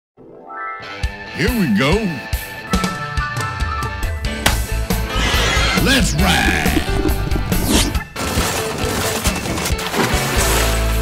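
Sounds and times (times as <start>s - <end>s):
background music: 0.2s - 11.0s
horse whinny: 5.0s - 8.0s.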